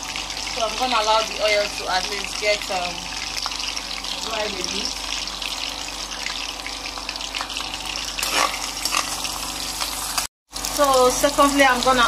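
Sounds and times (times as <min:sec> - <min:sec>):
onions sizzling in a frying pan: 0:00.0 - 0:12.0.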